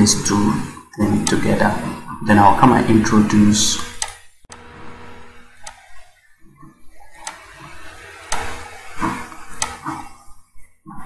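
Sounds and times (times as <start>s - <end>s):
faint steady hum: 0.0s - 11.0s
computer mouse clicking: 3.8s - 4.2s, 5.6s - 5.9s, 7.1s - 7.4s, 8.2s - 10.0s.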